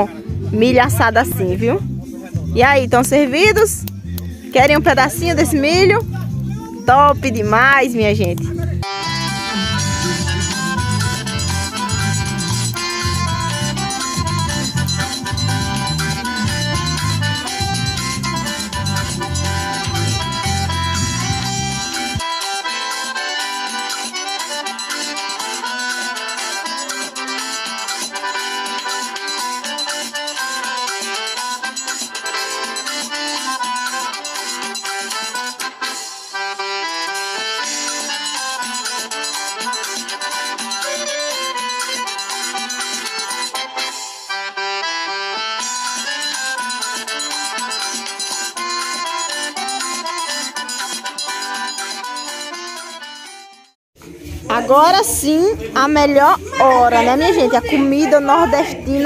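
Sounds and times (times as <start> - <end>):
instrumental background music: 0.0 - 59.0.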